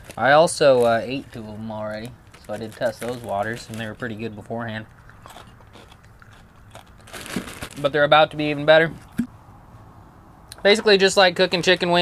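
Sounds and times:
person chewing crispy food: 0:04.9 - 0:07.8.

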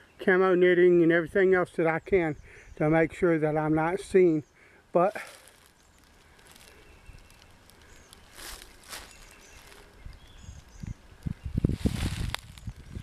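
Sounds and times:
soft rustles: 0:05.1 - 0:13.0
faint high bird chirps: 0:05.6 - 0:11.7.

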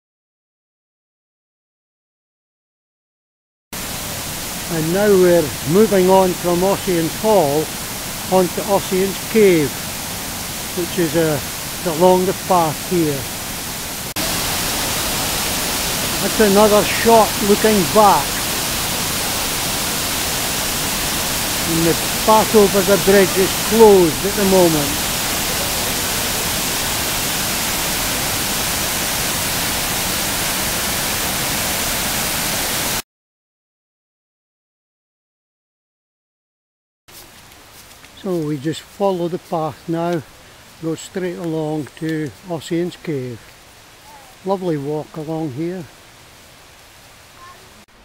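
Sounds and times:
waterfall rushing: 0:03.8 - 0:33.0, 0:37.2 - 0:48.0.

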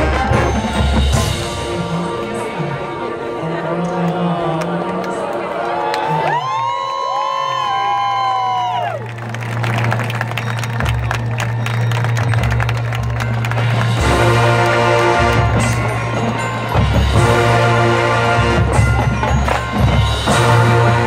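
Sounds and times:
marching band playing: 0:00.0 - 0:04.8, 0:09.1 - 0:21.0
crowd cheering and shouting: 0:04.0 - 0:14.6.

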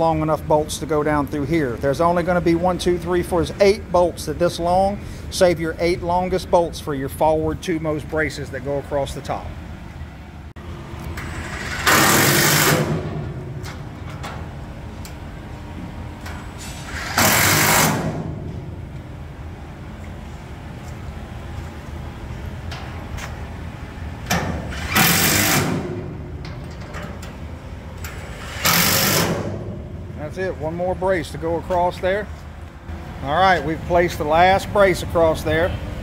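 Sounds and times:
impact wrench bursts: 0:11.2 - 0:13.1, 0:16.6 - 0:18.3, 0:24.3 - 0:26.0, 0:28.1 - 0:29.7.

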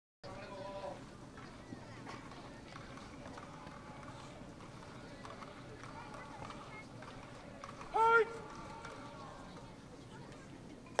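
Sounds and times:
distant spectator chatter: 0:00.2 - 0:11.0.

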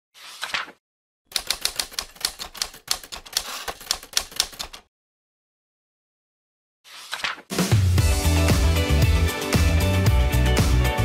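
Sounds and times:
typewriter keys clacking: 0:01.3 - 0:04.9.

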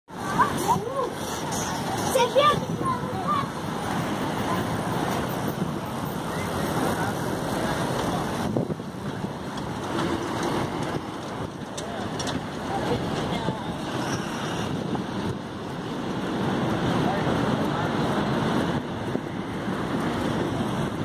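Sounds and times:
wind noise on microphone: 0:00.1 - 0:21.0.

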